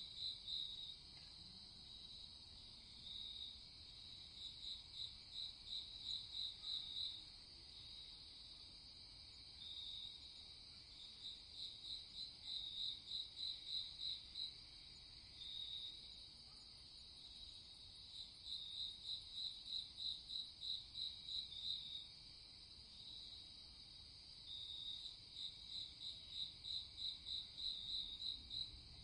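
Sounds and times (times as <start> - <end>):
loud pulsed cricket chirps: 24.4 - 29.0.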